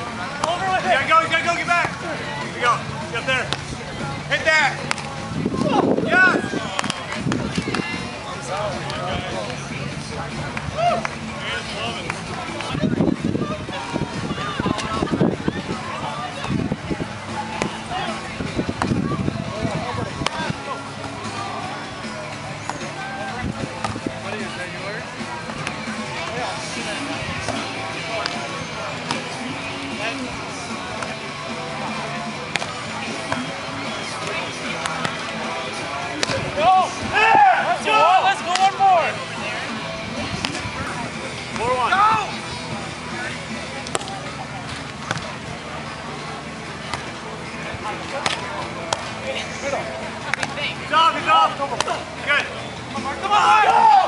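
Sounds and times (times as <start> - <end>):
players shouting: 0.0 - 12.9, 13.5 - 44.4, 45.2 - 54.0
crowd chatter: 0.0 - 54.0
music: 0.0 - 54.0
volleyball hits: 6.6 - 8.0, 22.0 - 24.3, 25.4 - 29.4, 30.8 - 31.2, 32.4 - 37.4, 43.8 - 45.4, 48.0 - 49.2, 50.2 - 50.7.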